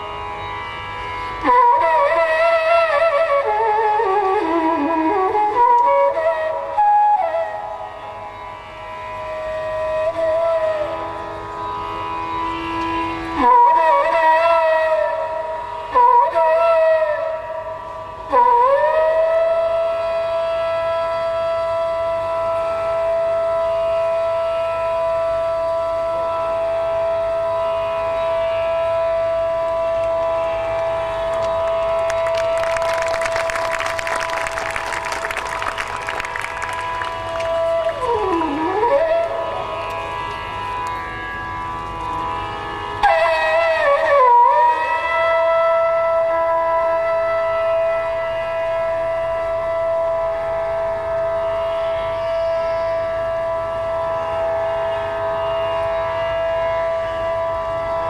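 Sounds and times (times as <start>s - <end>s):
bamboo flute held notes: 0.0s - 58.0s.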